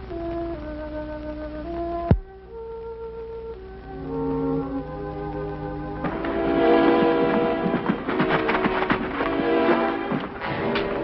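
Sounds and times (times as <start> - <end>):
orchestral sustained chords: 0.0 - 11.0.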